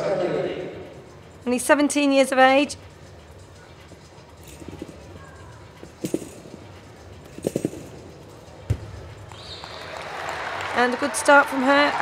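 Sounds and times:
trampoline springs creaking: 0:01.4 - 0:09.6
applause: 0:09.6 - 0:12.0.

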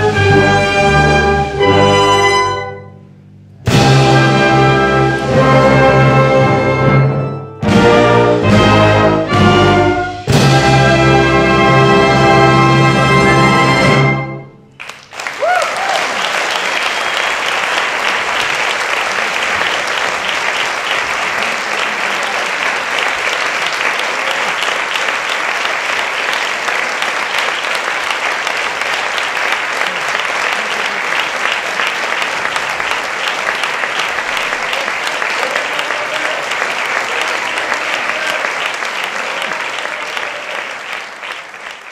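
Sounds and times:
audience applauding: 0:14.7 - 0:41.9.

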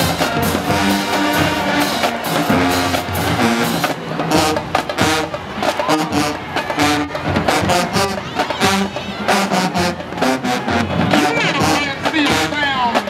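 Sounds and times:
marching band brass: 0:00.0 - 0:13.0
snare and bass drums: 0:00.0 - 0:13.0.

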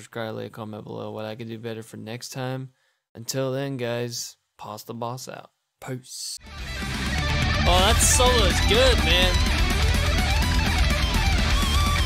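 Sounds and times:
distorted metal band backing: 0:06.5 - 0:12.0
electric guitar solo: 0:06.6 - 0:12.0.

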